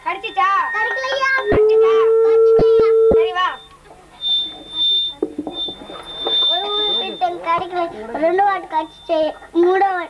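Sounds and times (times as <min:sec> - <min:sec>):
faint voices: 0:00.0 - 0:10.0
high buzzer tone: 0:00.1 - 0:07.8.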